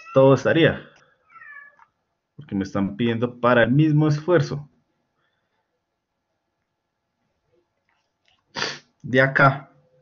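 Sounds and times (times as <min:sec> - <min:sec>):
man's sharp burst of breath: 0:08.5 - 0:08.9.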